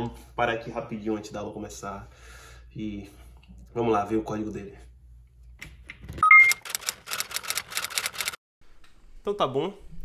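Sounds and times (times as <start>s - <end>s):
short electronic beeps: 6.2s - 6.6s
sharp clacks like typing: 6.5s - 8.4s.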